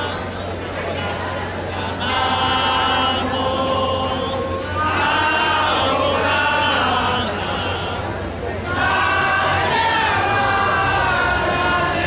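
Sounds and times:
voices singing a hymn: 1.0 - 12.0.

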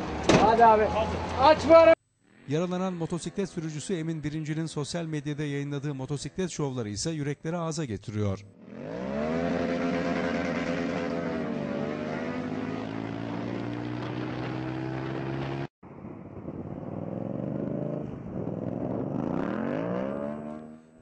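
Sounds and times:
motorcycle engine running: 9.5 - 15.7.

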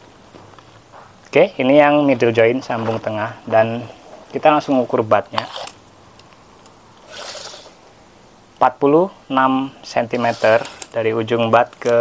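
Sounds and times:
measuring tape rustling: 10.1 - 11.0.

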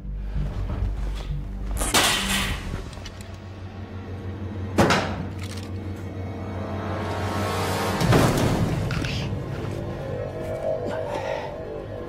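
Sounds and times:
low film score drone: 0.0 - 12.0.

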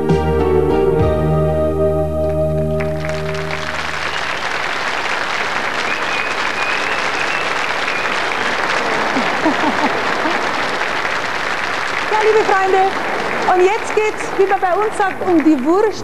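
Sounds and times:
large audience applauding: 2.2 - 16.0.

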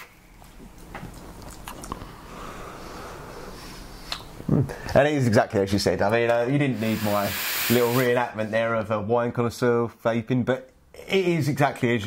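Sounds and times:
wet mouth clicks and lip smacks: 1.4 - 2.0.

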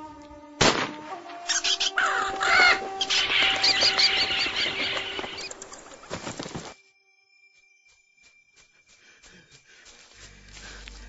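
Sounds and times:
bird cawing and chirping: 1.5 - 6.2.

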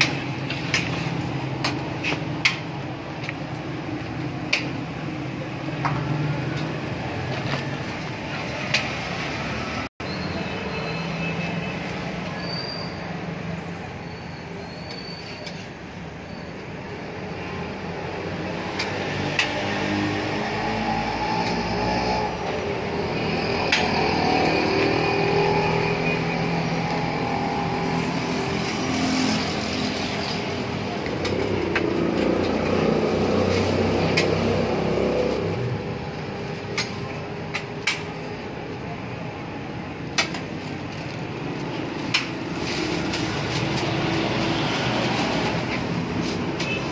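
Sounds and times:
vehicles passing: 0.0 - 46.9.

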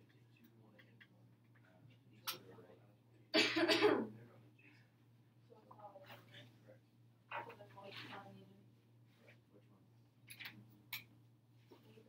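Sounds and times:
faint low hum: 0.0 - 12.0
person coughing: 3.4 - 4.2.

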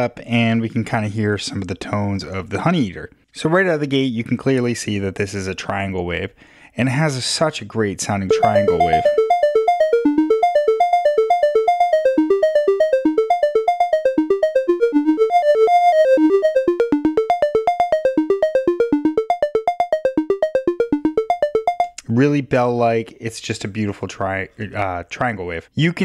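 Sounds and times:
synthesizer bell-like notes: 8.3 - 22.0.

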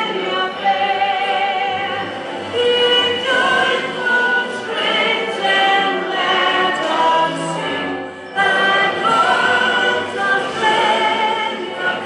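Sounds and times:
backing music: 0.0 - 12.0
crowd singing: 0.0 - 12.0.

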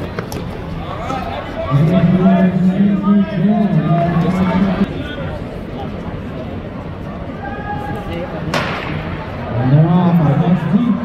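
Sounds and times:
crowd yelling: 0.8 - 5.0, 7.3 - 11.0.

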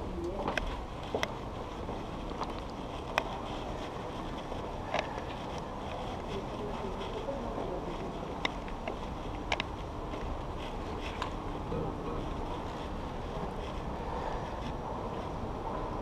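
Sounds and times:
bicycles clicking and knocking: 0.0 - 16.0
steady low rumble: 0.0 - 16.0.

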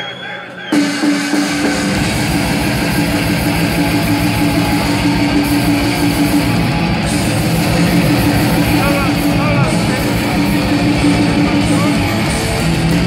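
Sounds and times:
loud distorted guitars: 0.0 - 13.0
rapid kick drum strokes: 1.0 - 13.0.

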